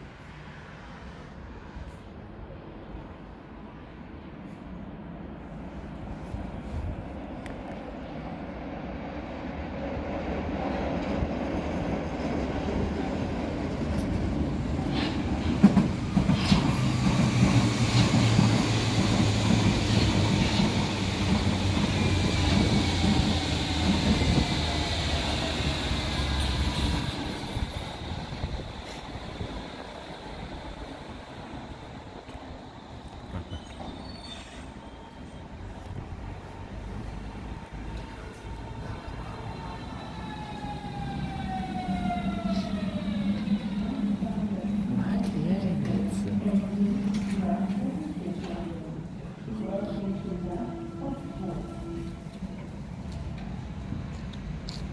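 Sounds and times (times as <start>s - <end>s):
train wheels rumbling on rails: 5.8s - 54.9s.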